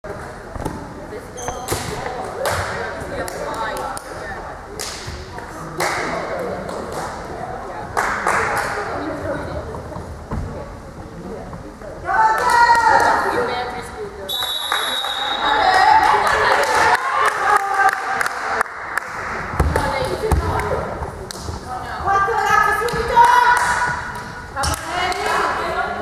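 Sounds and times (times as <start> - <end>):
players' voices in sports hall: 0.0 - 26.0
sharp claps: 4.8 - 5.1, 5.8 - 7.2, 8.0 - 8.8, 22.8 - 25.4
players shouting in echoing hall: 12.0 - 13.4.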